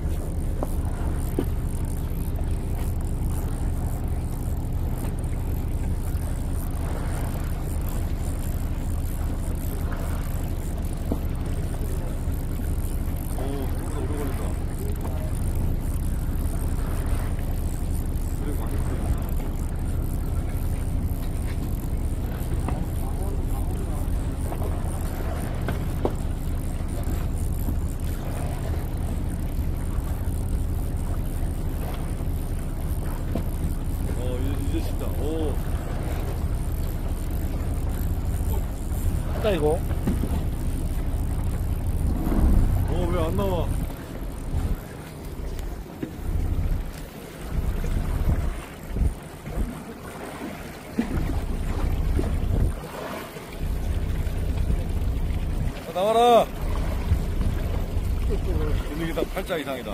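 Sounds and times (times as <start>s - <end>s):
boat engine humming: 0.0s - 59.9s
voices: 5.9s - 30.5s, 32.9s - 45.6s, 55.7s - 56.7s, 57.4s - 59.9s.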